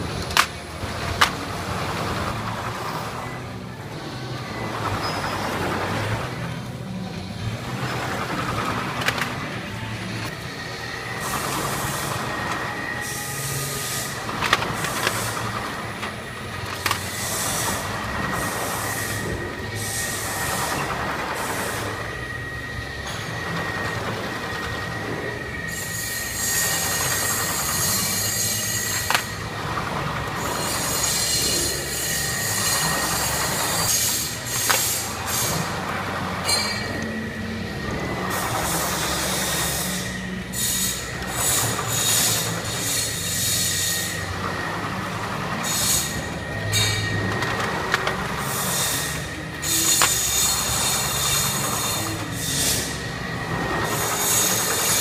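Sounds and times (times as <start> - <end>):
conveyor machine low rumble: 0.0 - 55.0.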